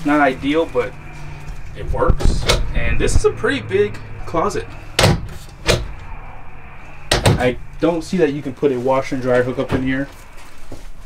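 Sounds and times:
closet door knocks: 7.1s - 7.4s.

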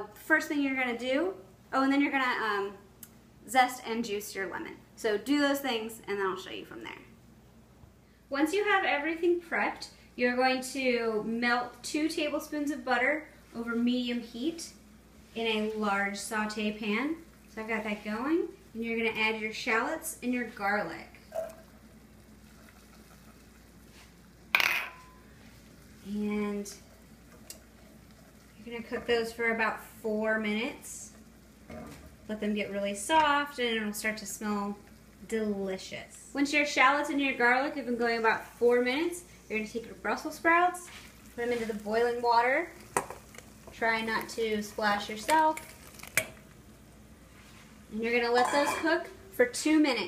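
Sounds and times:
boiling water hiss: 8.2s - 50.0s
metal bowl clinking on pan: 24.6s - 25.3s, 42.8s - 43.2s, 48.3s - 49.1s.

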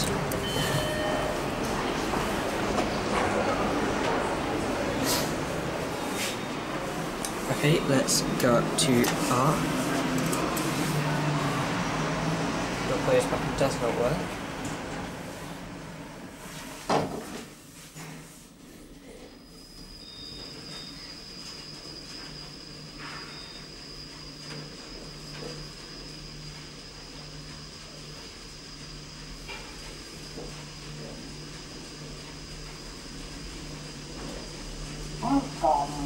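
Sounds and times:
lift hum and whine: 0.0s - 16.7s, 19.2s - 36.0s
short high beeps: 0.3s - 1.5s.

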